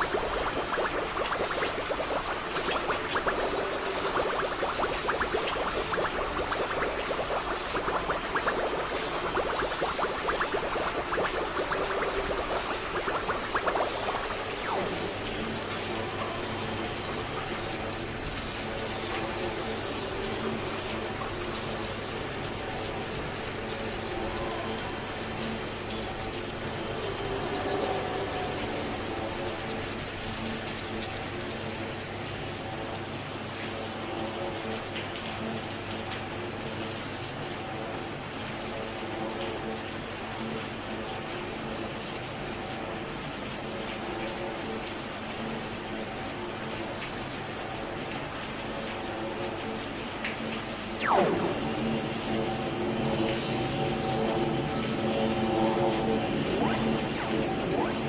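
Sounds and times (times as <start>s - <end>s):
aquarium water flowing: 0.0s - 58.0s.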